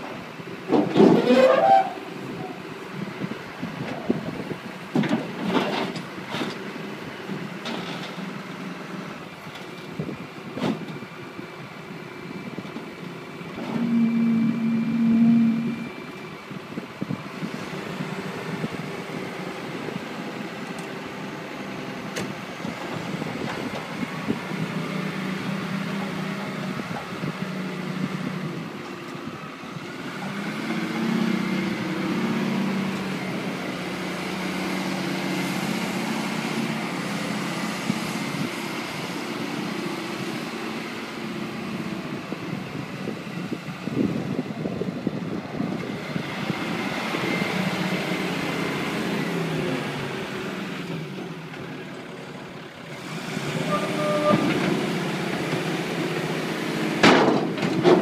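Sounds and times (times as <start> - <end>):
wheel loader diesel engine: 0.0 - 58.0.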